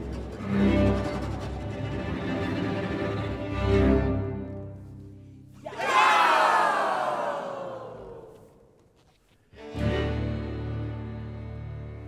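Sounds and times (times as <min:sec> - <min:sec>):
group shouting together: 0:05.6 - 0:08.4.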